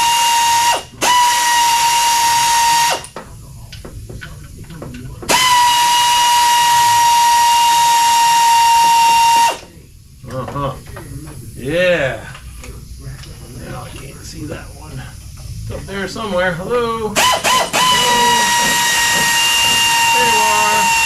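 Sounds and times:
pneumatic ratchet whining: 0.0s - 3.2s, 5.3s - 9.6s, 17.2s - 21.0s
air hiss: 5.3s - 9.8s, 17.2s - 21.0s.

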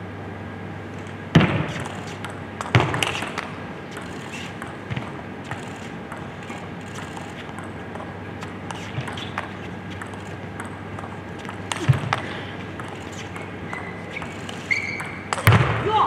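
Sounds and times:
loud thuds: 1.3s - 3.4s
table tennis ball clicking: 1.8s - 12.2s, 12.8s - 15.5s.

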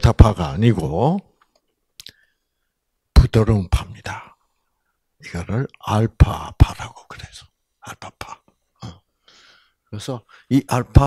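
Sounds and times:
man speaking: 0.0s - 1.3s, 3.2s - 4.4s, 5.2s - 9.0s, 9.9s - 11.0s.

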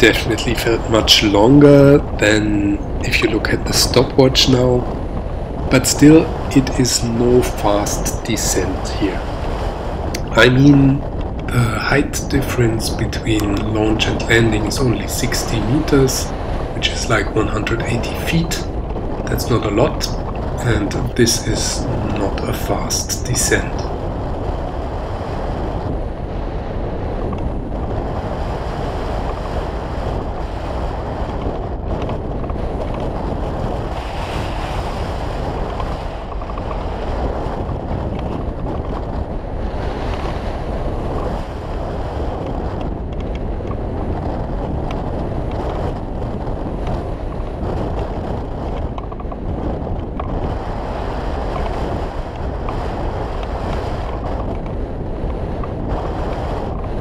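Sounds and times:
wind rushing over microphone: 0.0s - 57.0s.

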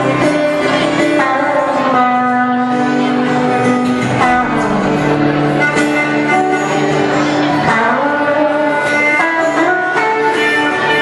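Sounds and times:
acoustic guitar melody: 0.0s - 11.0s.

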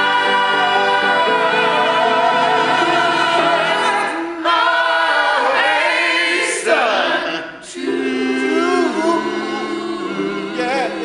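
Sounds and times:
congregation singing gospel song: 0.0s - 11.0s.

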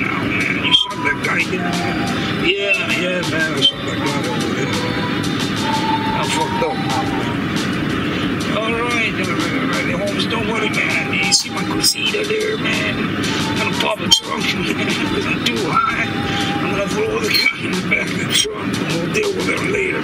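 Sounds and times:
music with voices: 0.0s - 20.0s.

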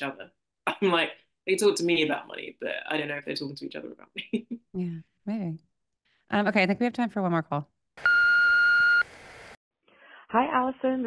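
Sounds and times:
voicemail beep: 8.0s - 9.1s.

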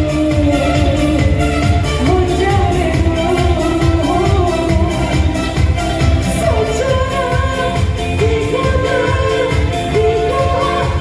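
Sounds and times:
bass-heavy beat: 0.0s - 11.0s
woman singing into a microphone: 0.0s - 11.0s.

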